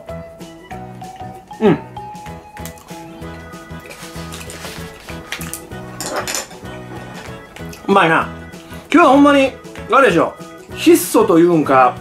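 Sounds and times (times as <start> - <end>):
background music: 0.0 - 12.0
clatter of tableware: 6.0 - 7.4.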